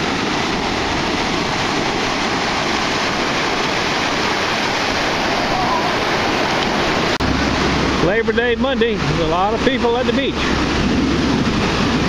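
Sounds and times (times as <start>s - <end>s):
ocean surf breaking: 0.0s - 12.0s.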